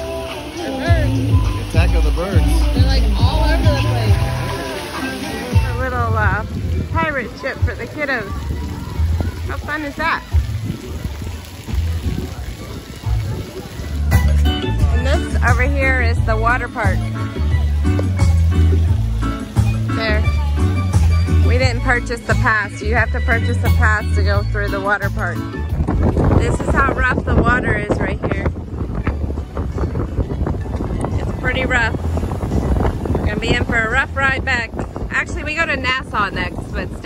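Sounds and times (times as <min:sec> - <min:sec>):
hiss of water jets: 0:00.0 - 0:16.0
music with voice: 0:00.0 - 0:37.0
wind buffeting microphone: 0:05.5 - 0:19.2, 0:21.0 - 0:37.0.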